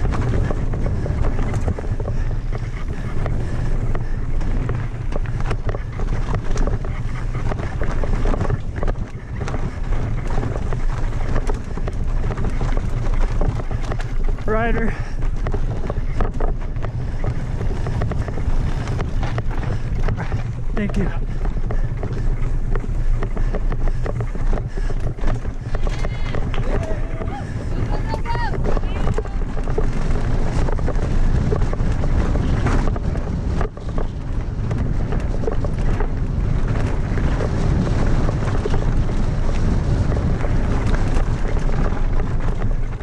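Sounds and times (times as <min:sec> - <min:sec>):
bike clattering and rattling: 0:00.0 - 0:43.0
tyre noise on dirt: 0:00.0 - 0:43.0
wind buffeting microphone: 0:00.0 - 0:43.0.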